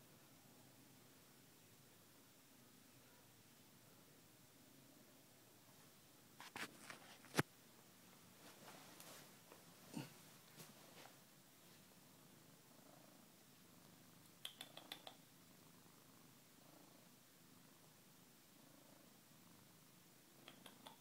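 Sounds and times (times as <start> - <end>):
cat purring: 11.3 - 21.0
small clicks: 14.2 - 15.2, 20.4 - 21.0.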